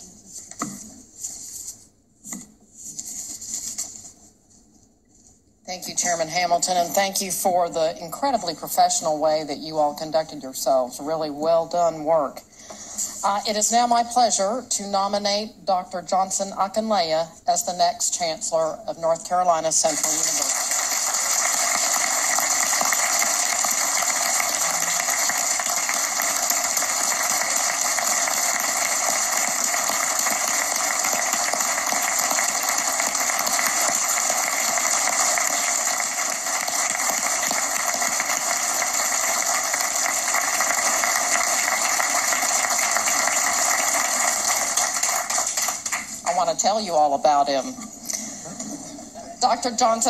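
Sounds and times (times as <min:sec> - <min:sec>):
crowd applauding: 0:20.0 - 0:46.2.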